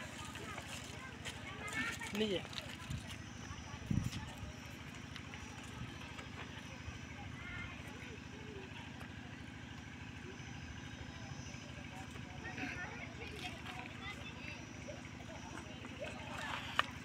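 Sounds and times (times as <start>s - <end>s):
low pulsing engine drone: 0.0s - 17.0s.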